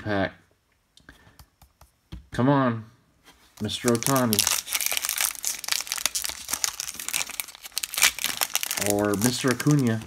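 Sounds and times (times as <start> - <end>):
foil wrapper crinkling: 3.6 - 10.0.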